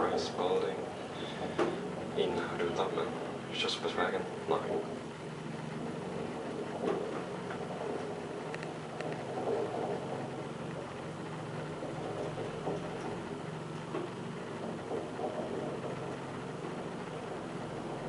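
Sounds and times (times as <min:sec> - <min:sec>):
elevator car hum and ride noise: 0:00.0 - 0:18.0
faint clicks: 0:06.3 - 0:17.2.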